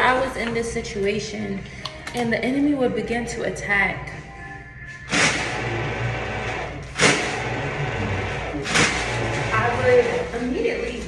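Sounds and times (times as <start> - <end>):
electric hand dryer running: 5.1 - 10.8.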